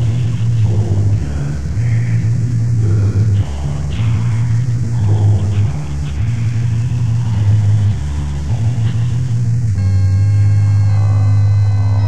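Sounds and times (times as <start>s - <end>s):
low droning bass: 0.0s - 12.0s
noisy rumbling haze: 0.0s - 12.0s
sustained synthesizer chord: 0.0s - 12.0s.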